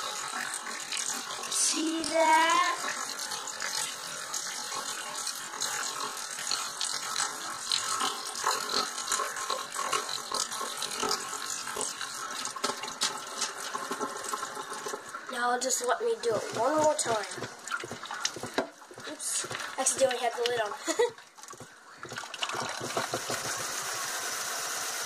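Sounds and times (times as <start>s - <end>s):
water sloshing in plastic bottle: 15.8s - 23.4s.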